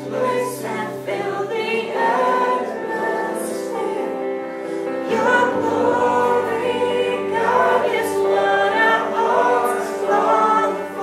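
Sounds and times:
woman singing through microphone: 0.0 - 4.3, 5.0 - 11.0
electric guitar: 0.0 - 11.0
group of voices singing along: 0.0 - 11.0.

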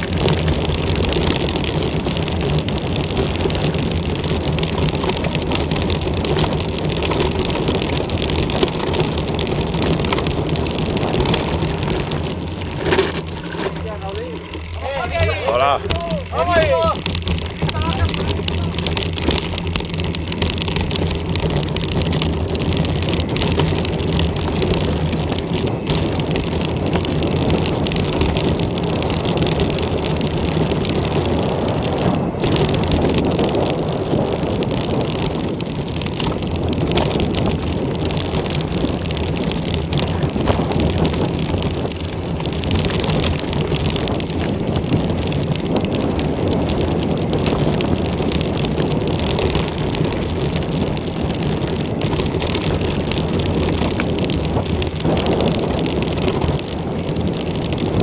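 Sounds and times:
bike rattles and knocks: 0.0 - 58.0
bike tyres rolling over gravel: 0.0 - 58.0
wind on microphone: 0.0 - 58.0.

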